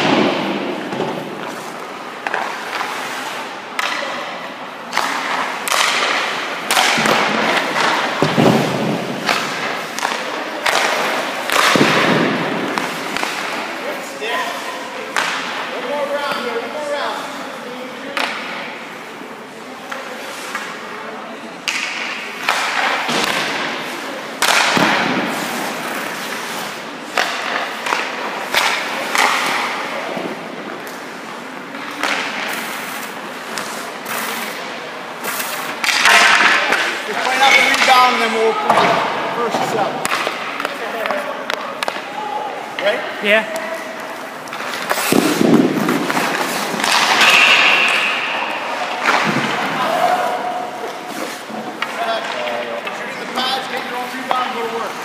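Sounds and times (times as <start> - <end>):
sticks hitting pucks: 0.0 - 16.6, 18.0 - 19.0, 19.8 - 55.0
pucks hitting pads boards and net: 0.0 - 55.0
skate blades scraping ice: 0.3 - 3.6, 25.2 - 29.6, 30.8 - 38.4, 43.9 - 55.0.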